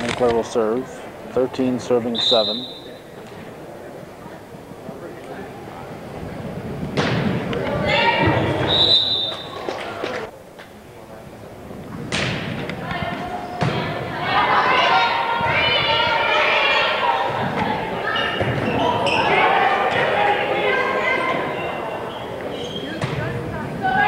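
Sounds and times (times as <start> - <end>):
referee's whistle blast: 2.1 - 3.0, 8.6 - 9.6
people shouting and cheering: 7.5 - 10.3, 12.8 - 24.0.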